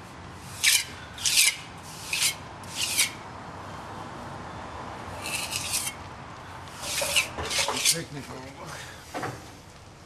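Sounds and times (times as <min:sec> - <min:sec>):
hand tool scraping concrete: 0:00.6 - 0:03.2, 0:05.2 - 0:06.0, 0:06.8 - 0:08.1.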